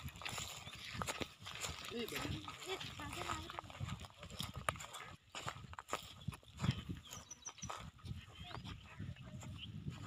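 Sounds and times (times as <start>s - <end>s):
footsteps on dry grass: 0.0s - 10.0s.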